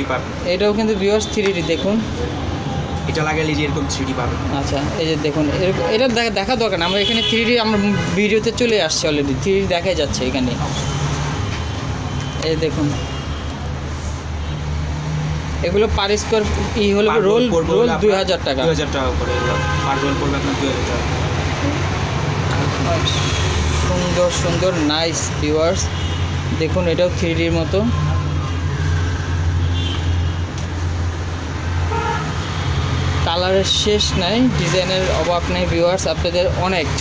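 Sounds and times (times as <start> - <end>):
road traffic rumble: 0.0 - 37.0.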